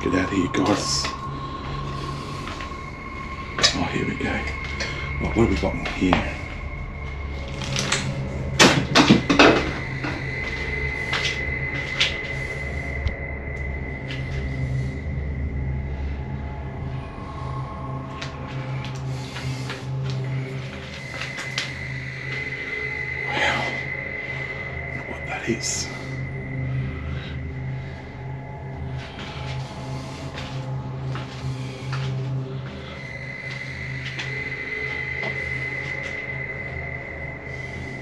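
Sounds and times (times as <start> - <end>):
droning background music: 0.0 - 38.0.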